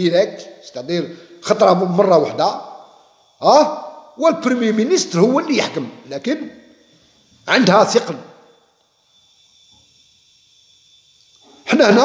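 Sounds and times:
man speaking: 0:00.0 - 0:02.6, 0:03.4 - 0:06.6, 0:07.5 - 0:08.2, 0:11.7 - 0:12.0
room hiss: 0:00.0 - 0:12.0.

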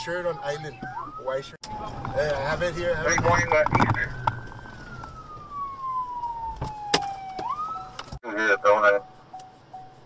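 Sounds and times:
police siren wailing: 0:00.0 - 0:09.9.

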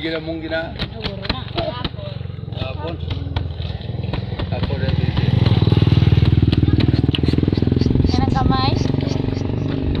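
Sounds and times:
motorcycle engine running: 0:00.0 - 0:10.0
child's voice: 0:07.9 - 0:09.2.

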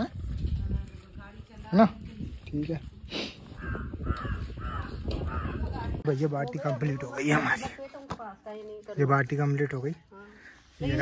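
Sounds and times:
crow cawing: 0:03.6 - 0:05.9.

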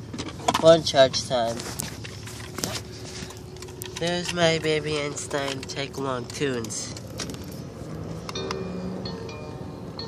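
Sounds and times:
phone being handled: 0:01.5 - 0:08.6.

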